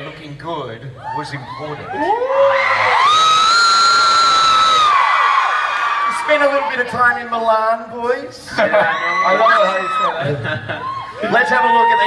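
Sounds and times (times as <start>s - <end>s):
fans screaming and cheering: 1.0s - 7.4s, 8.5s - 12.0s
shrill held scream: 1.9s - 6.4s.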